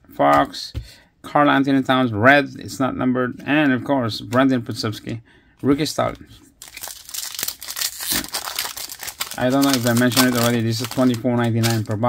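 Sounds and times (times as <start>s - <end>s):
foil wrapper crinkling and tearing: 6.6s - 12.0s.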